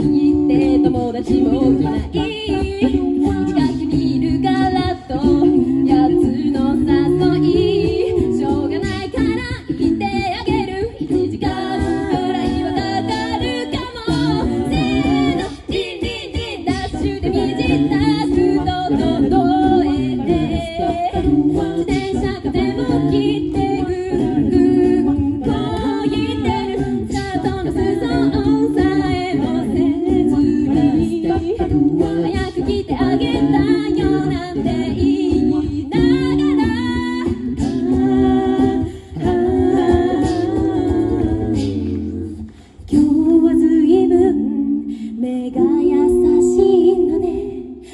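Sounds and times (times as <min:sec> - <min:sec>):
a cappella group singing: 0:00.0 - 0:47.9.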